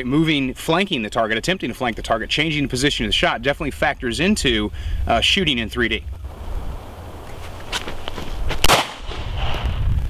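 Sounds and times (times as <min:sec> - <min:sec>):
handgun shot with echo: 0:08.6 - 0:09.3.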